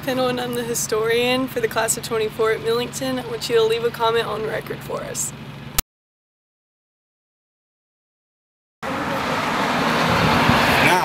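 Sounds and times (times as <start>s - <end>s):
road traffic roar: 0.0s - 5.8s, 8.8s - 11.0s.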